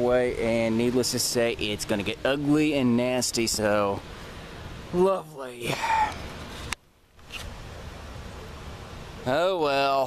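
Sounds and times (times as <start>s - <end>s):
camera microphone handling: 6.6s - 7.6s.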